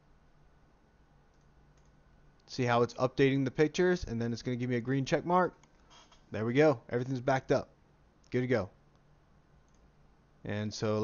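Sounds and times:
faint clicks: 1.3 - 2.5, 8.2 - 9.9.

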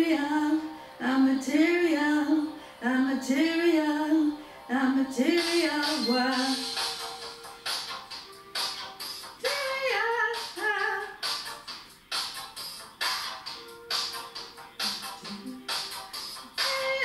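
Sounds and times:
woman singing karaoke: 0.0 - 6.7, 9.4 - 11.2, 16.6 - 17.0
backing track with steady beat: 5.2 - 17.0.

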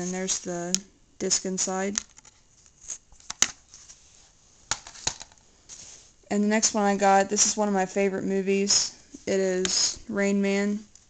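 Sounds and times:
plastic case rustling: 4.7 - 6.0.

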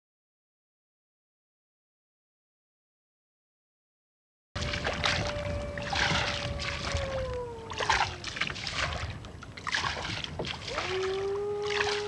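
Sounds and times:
boat swishing through reeds: 4.6 - 12.0.

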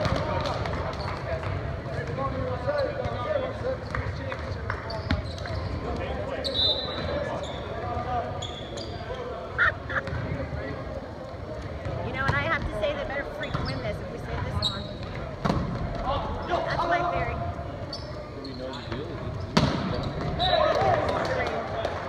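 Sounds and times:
volleyball struck hard: 19.6 - 20.4.

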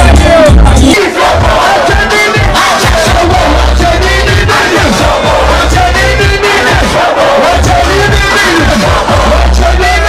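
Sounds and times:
crowd shouting and singing: 0.0 - 10.0
live music with heavy bass beat: 0.0 - 10.0.

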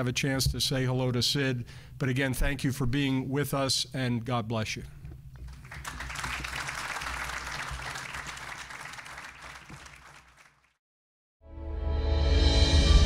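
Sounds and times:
audience applauding: 5.5 - 10.8.

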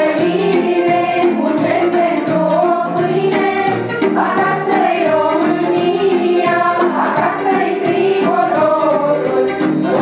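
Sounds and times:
choir singing: 0.0 - 10.0.

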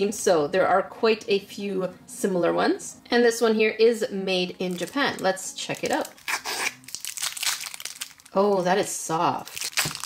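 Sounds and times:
plastic wrapper crinkling and tearing: 4.7 - 10.0.

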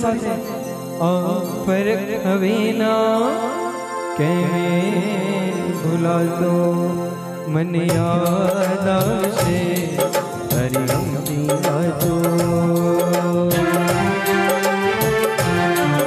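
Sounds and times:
devotional hymn melody: 0.0 - 16.0
sustained accompaniment: 0.0 - 16.0
percussion strikes: 7.6 - 16.0.

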